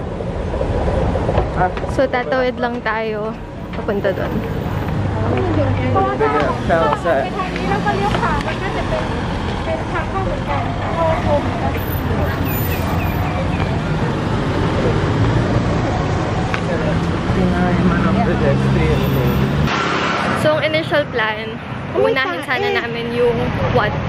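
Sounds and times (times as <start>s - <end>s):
traffic passing: 0.0s - 24.0s
vehicle engine hum: 0.0s - 24.0s
people's voices: 1.5s - 24.0s.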